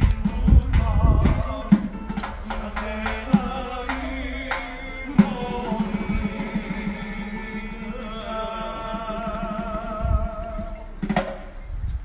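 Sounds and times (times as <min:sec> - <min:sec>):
rapid drum strokes: 0:00.0 - 0:11.7
folk instrument ensemble: 0:00.0 - 0:12.0.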